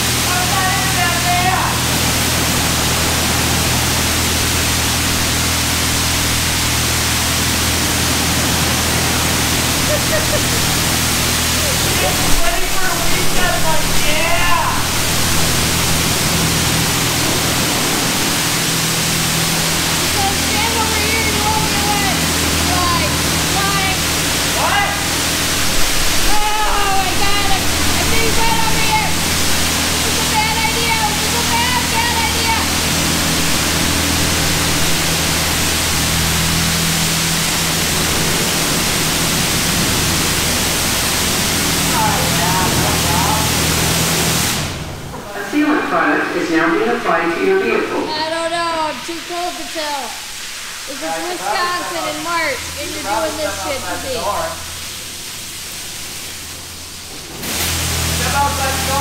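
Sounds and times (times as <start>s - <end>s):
high-pressure water spray hissing: 0.0s - 59.0s
steady low hum: 0.0s - 59.0s.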